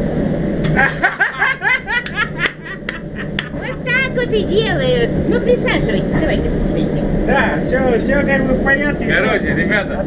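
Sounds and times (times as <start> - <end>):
moving train rumble: 0.0 - 10.0
person chuckling: 0.7 - 3.8.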